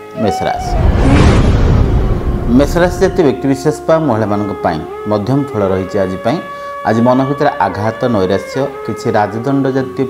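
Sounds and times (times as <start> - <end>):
background music: 0.0 - 10.0
whoosh with deep rumble: 0.5 - 3.6.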